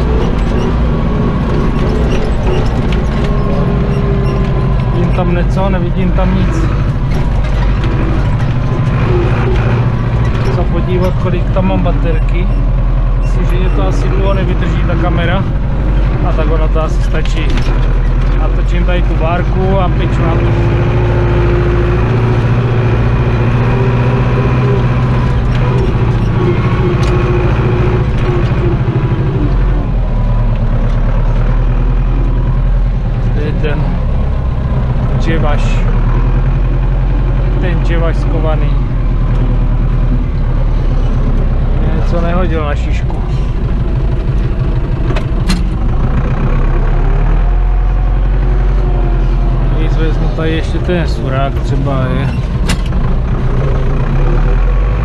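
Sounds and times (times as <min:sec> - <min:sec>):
tractor diesel engine running: 0:00.0 - 0:55.0.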